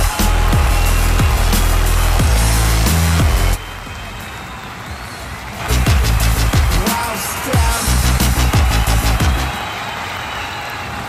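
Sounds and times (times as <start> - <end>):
dance music with heavy bass: 0.0 - 3.6, 5.7 - 9.5.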